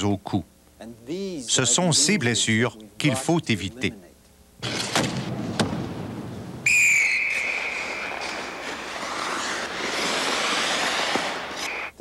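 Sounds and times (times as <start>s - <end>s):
referee's whistle blast: 6.6s - 8.3s.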